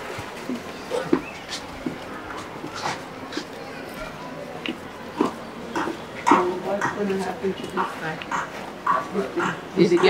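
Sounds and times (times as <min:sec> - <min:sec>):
people talking indistinctly: 0:00.8 - 0:10.0.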